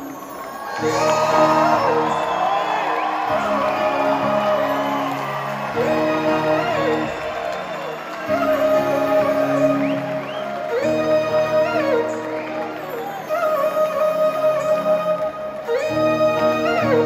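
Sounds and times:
people whooping: 0.0 - 17.0.

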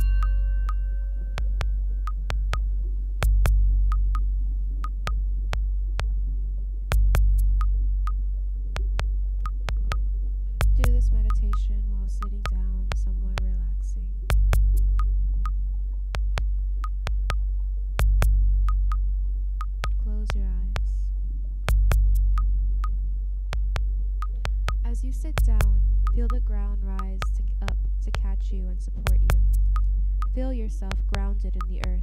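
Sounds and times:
sharp synth clicks with pings: 0.0 - 2.6
deep bass drone: 0.0 - 32.0.

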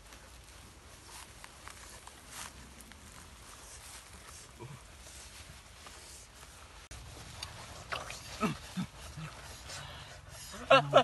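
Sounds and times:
low vocal grunts: 7.9 - 9.4.

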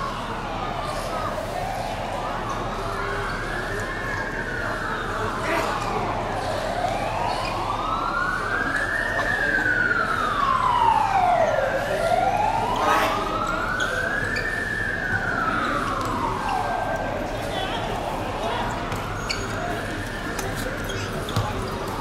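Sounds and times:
siren wailing: 0.6 - 20.6.

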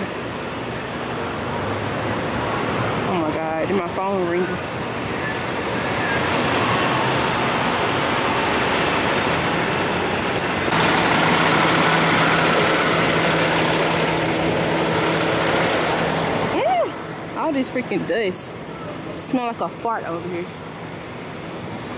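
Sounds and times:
diesel trucks idling: 0.0 - 21.9
low engine hum: 0.0 - 21.9.

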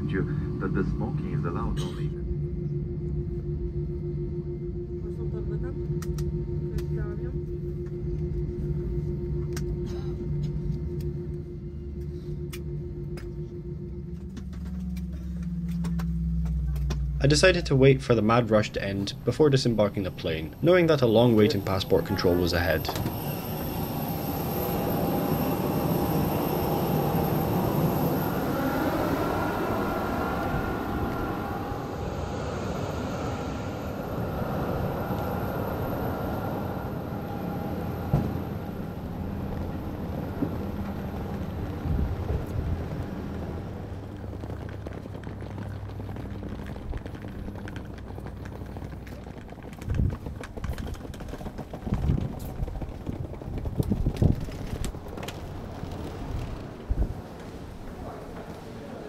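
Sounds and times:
jet aircraft whine and rumble: 0.0 - 59.0.

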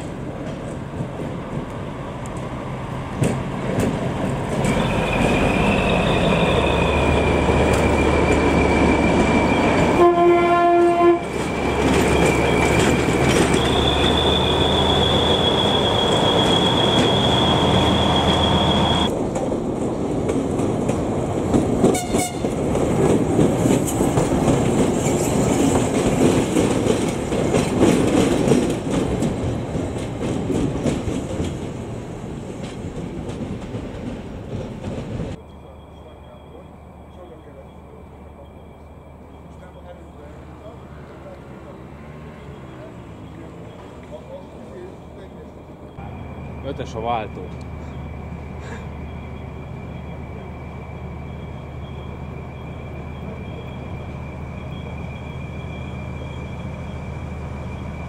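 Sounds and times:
diesel locomotive engine hum: 0.0 - 58.0
locomotive rumbling past: 0.0 - 58.0
high wheel squeal: 4.6 - 19.1, 35.4 - 58.0
locomotive horn: 9.9 - 11.4, 21.9 - 22.6
wheels clicking over rail joints: 19.0 - 35.4.

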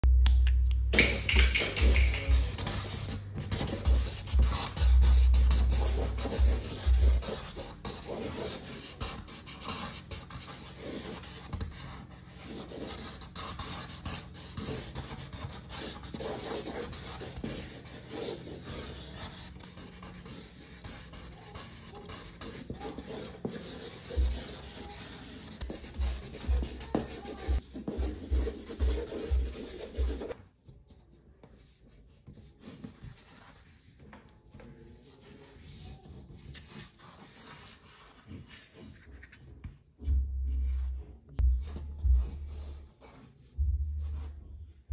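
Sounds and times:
marker scratching on paper: 0.9 - 30.4, 31.5 - 34.0, 35.1 - 43.4, 44.0 - 44.4.

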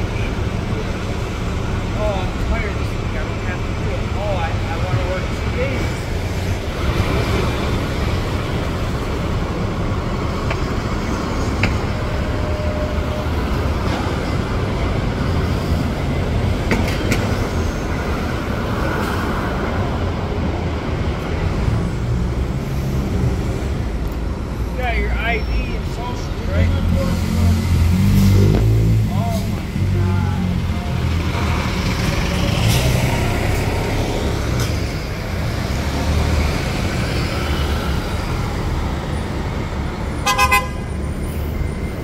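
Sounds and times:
diesel bus engine: 0.0 - 42.0
traffic engine rumble: 0.0 - 42.0.

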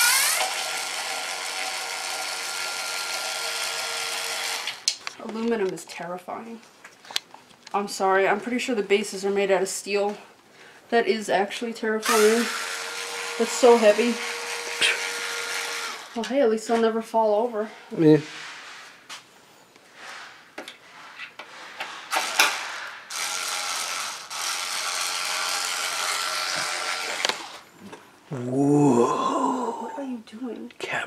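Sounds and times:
cordless drill whining: 0.0 - 4.9, 12.0 - 16.2, 22.1 - 27.7.

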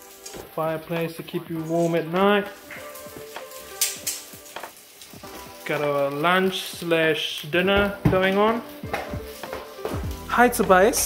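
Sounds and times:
background music: 0.0 - 11.0
sausages sizzling in a frying pan: 0.0 - 11.0.

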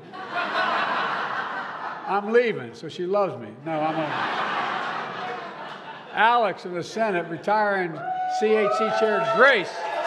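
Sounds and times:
audience laughing: 0.0 - 2.3, 3.7 - 6.4.

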